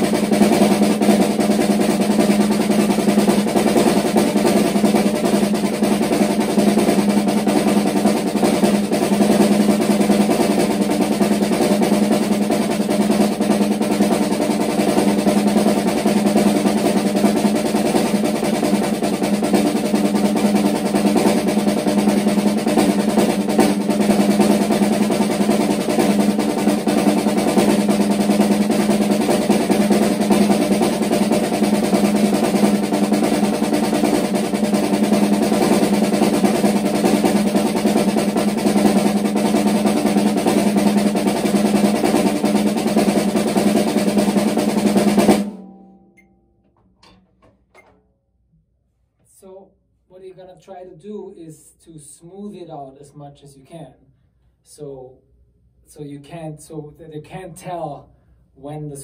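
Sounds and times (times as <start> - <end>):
snare drum played with sticks: 0.0 - 48.0.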